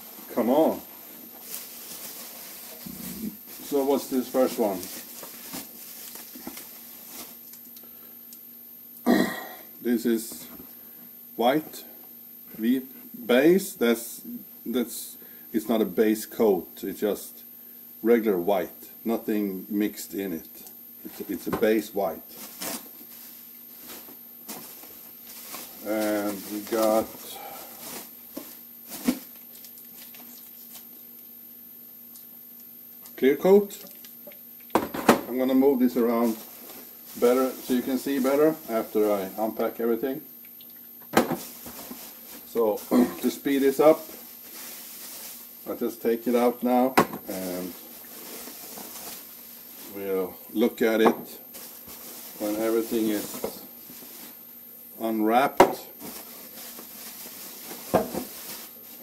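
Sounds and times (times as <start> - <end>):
bubble wrap crinkling: 0.0 - 7.8, 22.4 - 30.9, 43.9 - 45.6, 47.3 - 50.0, 51.5 - 54.4, 56.0 - 59.0.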